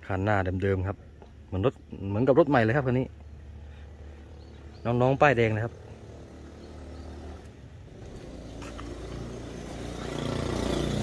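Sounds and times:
vehicle engine running: 2.9s - 11.0s.

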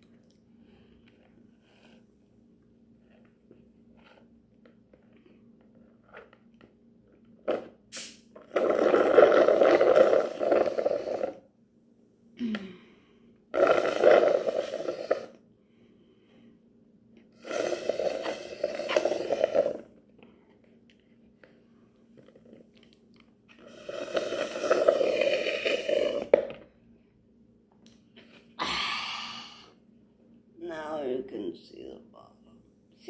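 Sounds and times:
slurping through a straw: 7.5s - 11.4s, 13.5s - 15.4s, 17.4s - 19.9s, 23.5s - 26.5s.

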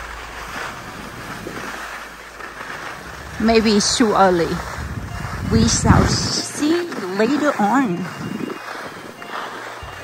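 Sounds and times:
skis sliding over snow: 0.0s - 10.0s
wind on microphone: 0.0s - 10.0s.

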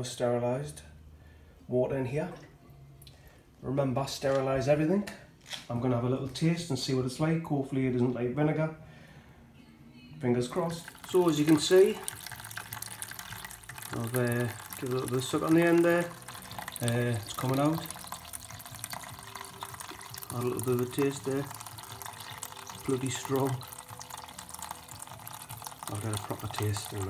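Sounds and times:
liquid trickling into bucket: 10.5s - 27.0s.

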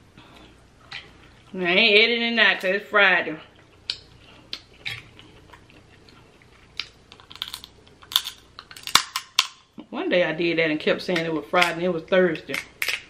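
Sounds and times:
chewing: 3.5s - 9.0s
crab shells cracking: 3.7s - 9.7s, 12.5s - 13.0s.

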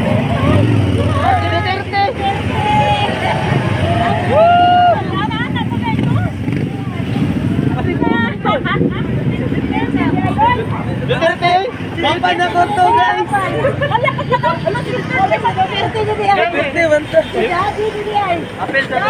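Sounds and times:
motorcycle engines rumbling: 0.0s - 19.0s
people shouting and calling out: 0.0s - 19.0s.

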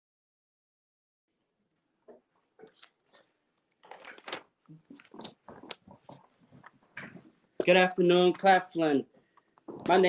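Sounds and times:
handling rustles and knocks: 3.8s - 7.7s.

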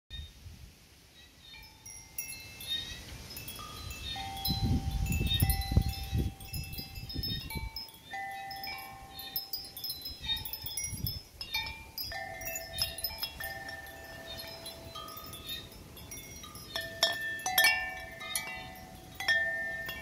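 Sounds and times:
metal wind chime ringing: 1.6s - 20.0s.

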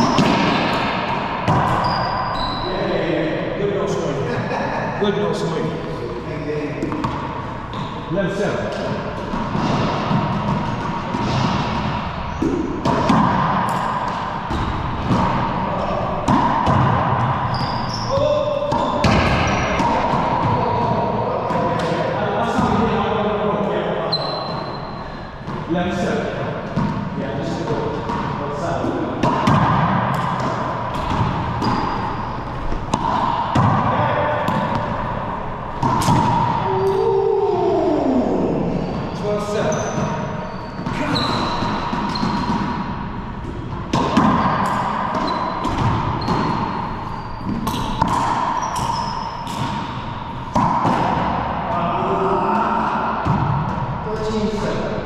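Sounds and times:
sneaker squeaks on hardwood: 0.0s - 0.8s, 1.5s - 2.9s, 6.9s - 8.1s, 17.2s - 19.9s, 24.1s - 25.6s, 30.9s - 33.4s, 38.8s - 42.8s, 44.0s - 50.7s
racquetball hits echoing: 0.0s - 4.4s, 6.6s - 55.0s.

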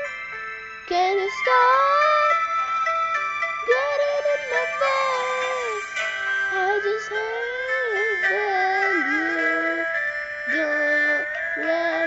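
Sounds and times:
person singing: 3.7s - 5.9s, 6.5s - 12.0s.

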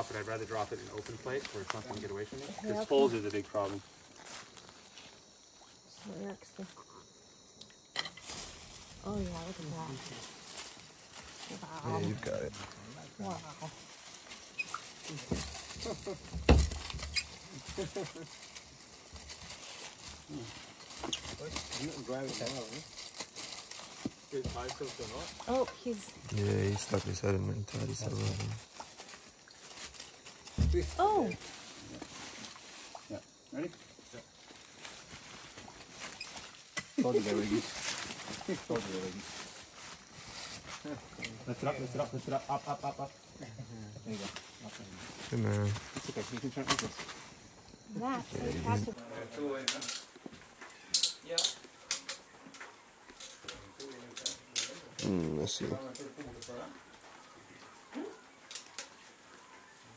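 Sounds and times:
rustle of dry leaves: 0.0s - 6.6s, 8.0s - 43.3s, 44.0s - 48.3s, 49.0s - 59.9s
faint insect hiss: 0.0s - 59.9s
boots rustling dead leaves: 8.2s - 9.1s.

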